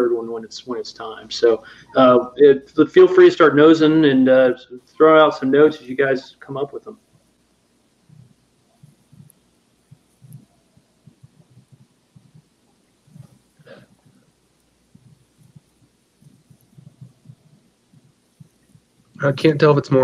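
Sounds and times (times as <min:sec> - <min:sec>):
breaths close to microphone: 0:01.6 - 0:02.0, 0:13.1 - 0:14.3
soft low thuds: 0:06.9 - 0:19.6.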